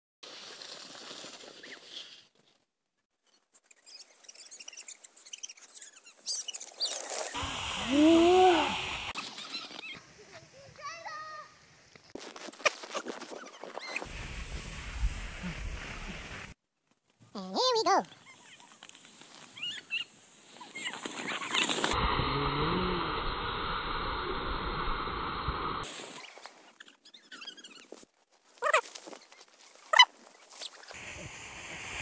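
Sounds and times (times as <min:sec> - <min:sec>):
steady hiss: 0:07.1 - 0:12.2, 0:14.0 - 0:16.6, 0:18.8 - 0:26.6, 0:30.9 - 0:32.0.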